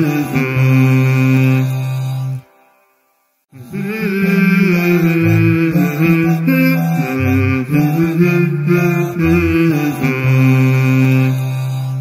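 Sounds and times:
chant-like sung jingle: 3.5s - 11.7s.

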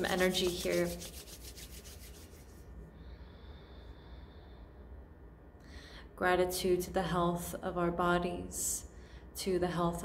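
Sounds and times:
palms rubbing together: 0.0s - 2.7s.

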